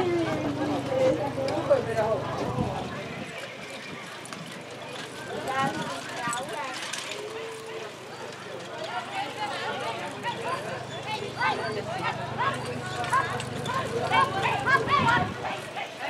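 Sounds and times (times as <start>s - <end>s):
voices calling out: 0.0s - 16.0s
horses trotting: 3.3s - 16.0s.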